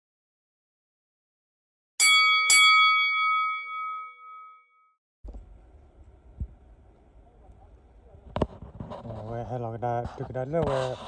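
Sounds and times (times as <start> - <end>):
bright bell dings: 2.0 - 5.0
faint low outdoor rumble: 5.2 - 10.6.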